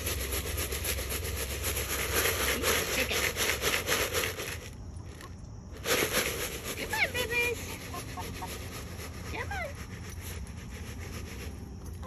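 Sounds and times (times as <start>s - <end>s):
chicken feed rattling in container: 0.0s - 7.6s.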